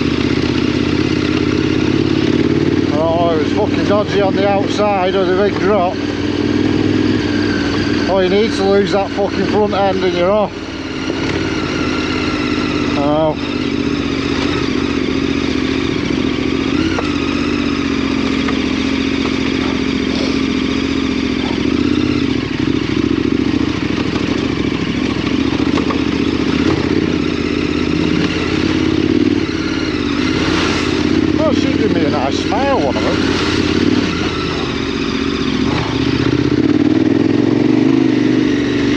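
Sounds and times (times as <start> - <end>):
motorcycle engine running: 0.0 - 38.9.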